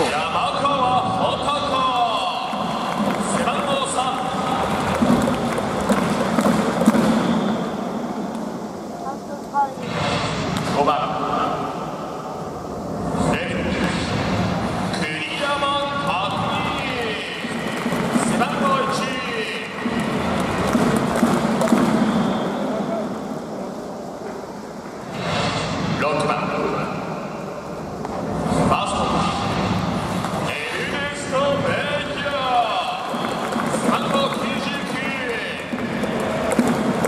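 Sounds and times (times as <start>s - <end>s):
echoing announcer voice: 0.0s - 7.5s, 14.9s - 23.5s, 30.4s - 37.0s
crowd clapping: 1.4s - 7.7s, 16.0s - 23.0s, 32.0s - 37.0s.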